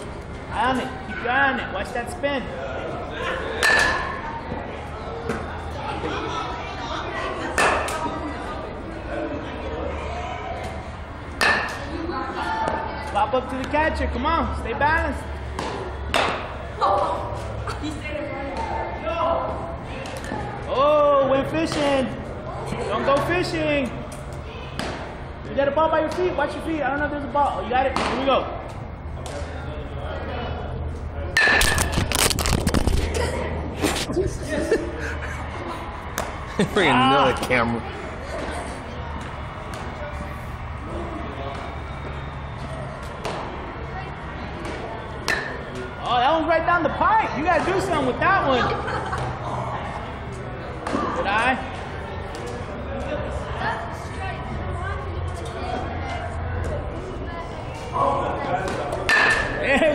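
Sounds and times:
bat hitting ball with ping: 3.6s - 4.1s, 45.3s - 45.6s, 59.1s - 59.6s
metal bat striking balls: 3.6s - 4.2s, 7.5s - 8.0s, 11.4s - 11.9s, 15.5s - 16.6s, 31.4s - 32.3s, 44.6s - 45.8s, 58.6s - 59.6s.

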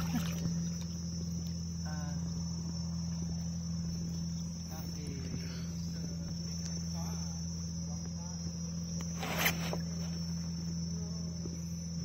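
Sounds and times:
insects trilling: 0.0s - 12.0s
low hum: 0.0s - 12.0s.

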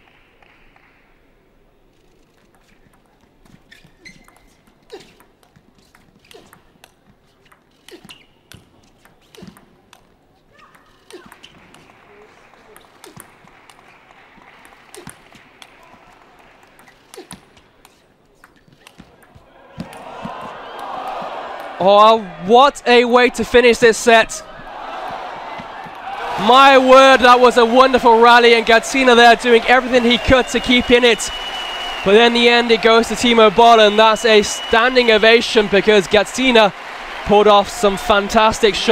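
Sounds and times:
crowd noise: 11.3s - 38.9s
table tennis ball clicking: 12.5s - 14.0s.

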